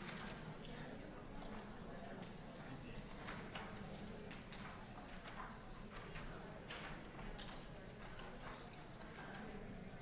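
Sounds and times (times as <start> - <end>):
low room background noise: 0.0 - 10.0.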